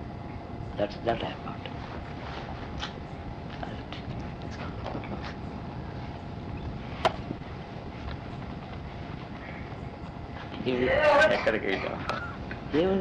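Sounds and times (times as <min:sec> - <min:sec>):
low background rumble: 0:00.0 - 0:13.0.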